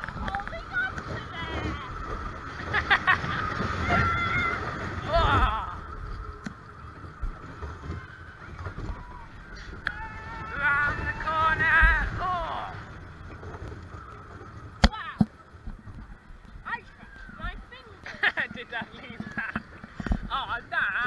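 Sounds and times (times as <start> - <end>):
wind on microphone: 0.0 - 17.8.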